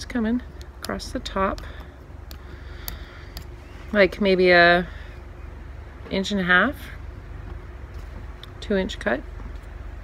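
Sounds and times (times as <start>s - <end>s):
low steady rumble: 0.0s - 10.0s.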